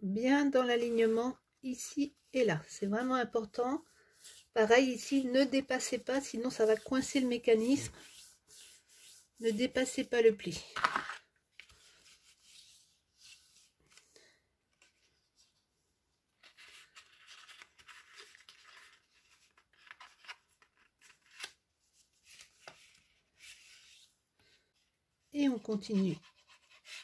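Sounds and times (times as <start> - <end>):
bone folder drawn along fold: 2.1 - 14.1, 16.4 - 24.7, 25.5 - 27.0
card stock scraping and rustling: 10.7 - 14.0.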